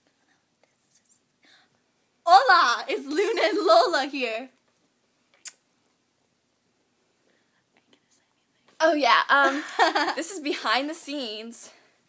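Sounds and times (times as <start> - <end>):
soft whisper: 0.0 - 1.8, 7.2 - 8.8.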